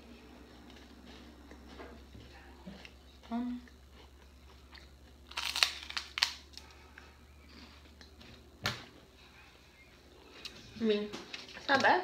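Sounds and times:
crunching bite of wafer: 4.7 - 6.6.

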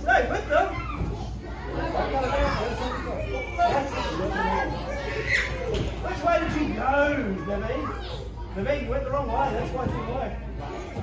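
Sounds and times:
students chattering and laughing: 0.0 - 11.0.

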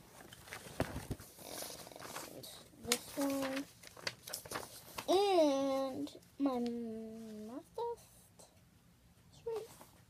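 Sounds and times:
paper sheets rustling: 0.0 - 5.4.

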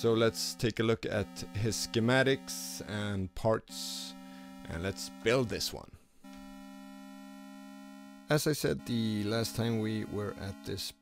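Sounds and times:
synthesizer drone: 0.0 - 11.0.

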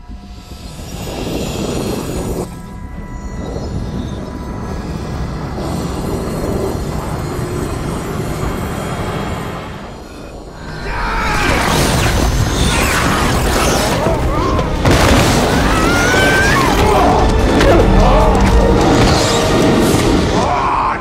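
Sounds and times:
rumble of sound effects: 0.0 - 21.0
dramatic music: 2.2 - 21.0.

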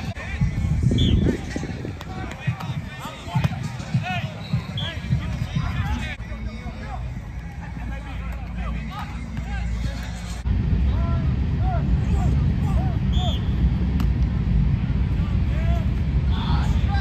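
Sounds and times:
steady low rumble: 0.0 - 17.0
sharp snap: 13.9 - 14.3.

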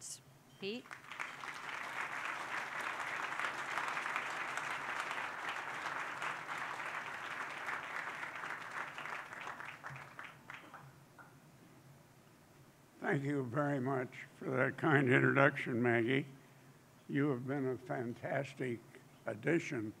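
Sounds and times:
audience applauding: 0.9 - 10.8.

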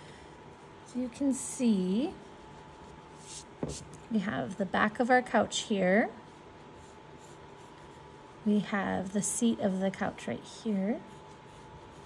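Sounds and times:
thin steady hum: 0.0 - 12.0
pencil scratching on paper: 1.9 - 4.7, 6.2 - 12.0.

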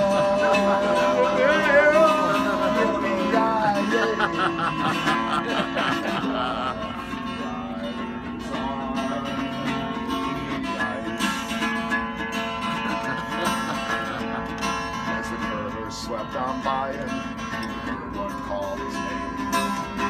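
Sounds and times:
instrumental guitar music: 0.0 - 20.0.

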